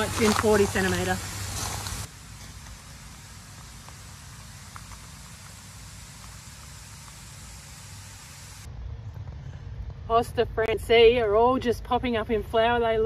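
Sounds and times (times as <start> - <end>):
hiss: 0.0 - 8.7.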